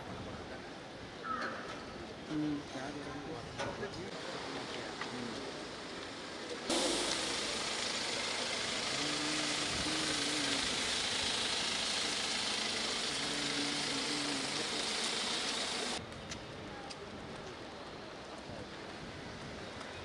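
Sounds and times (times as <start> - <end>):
steady hiss: 4.1 - 16.0
vehicle engine idling: 6.7 - 16.0.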